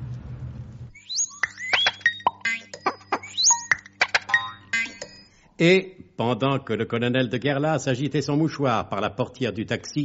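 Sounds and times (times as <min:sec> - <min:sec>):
comic musical bridge: 0:00.9 - 0:05.4.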